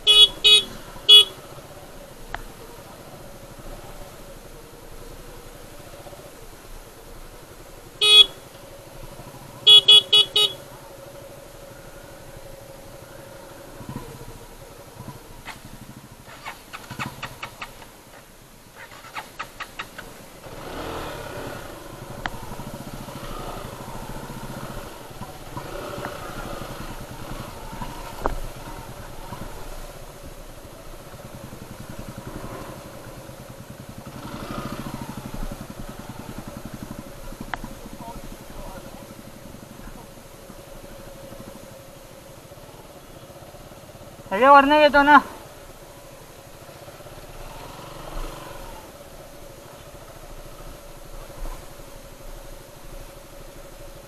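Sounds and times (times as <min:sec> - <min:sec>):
motorcycle horn honking: 0:00.0 - 0:01.4, 0:08.0 - 0:08.5, 0:09.6 - 0:10.7
motorcycle engine running: 0:00.0 - 0:54.0.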